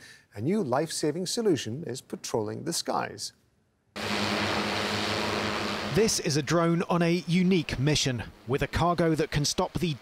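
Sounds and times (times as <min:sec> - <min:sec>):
drone propellers buzzing: 0:04.0 - 0:10.0.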